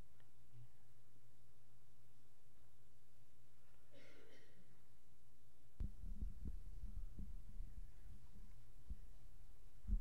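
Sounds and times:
low rumble: 5.8s - 9.1s
muffled low thumps: 5.8s - 9.1s, 9.8s - 10.0s.

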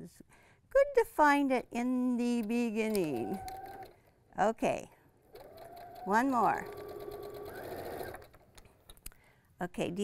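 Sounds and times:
electric sewing machine running: 2.8s - 4.0s, 5.3s - 8.4s.

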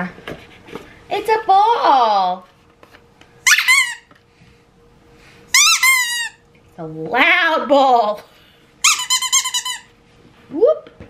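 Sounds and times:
squeaky dog toy squeaking: 3.4s - 4.1s, 5.5s - 6.4s, 8.8s - 9.9s.

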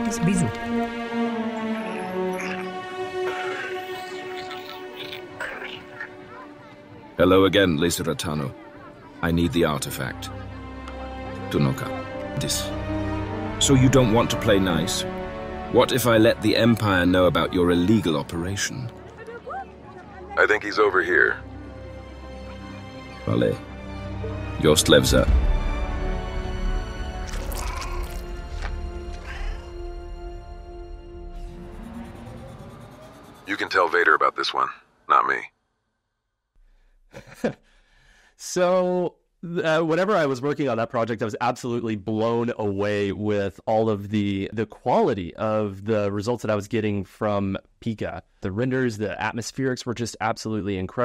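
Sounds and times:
sustained music notes: 0.0s - 5.3s, 28.2s - 34.0s
high creature call: 1.6s - 6.3s, 27.3s - 28.4s
held music drone: 28.5s - 33.8s.

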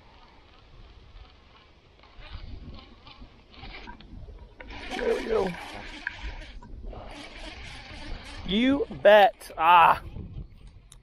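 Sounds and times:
man's wordless exclamation: 8.5s - 10.0s.

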